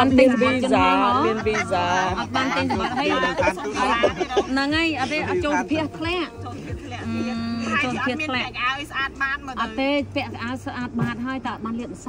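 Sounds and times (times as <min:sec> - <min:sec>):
women talking: 0:00.0 - 0:12.0.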